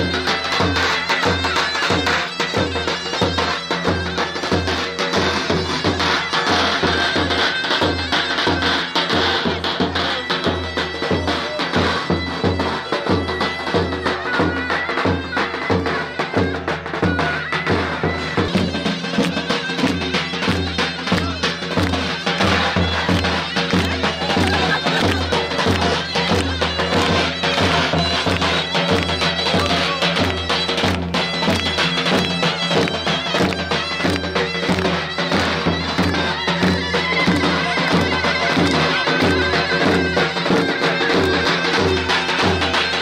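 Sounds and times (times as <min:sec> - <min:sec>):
shrill reedy wind instrument: 0:00.0 - 0:43.0
steady drum beat: 0:00.0 - 0:43.0.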